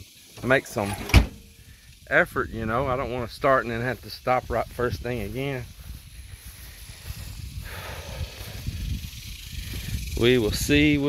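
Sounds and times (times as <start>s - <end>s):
leaves rustling: 0.2s - 10.7s
wind buffeting microphone: 1.3s - 11.0s.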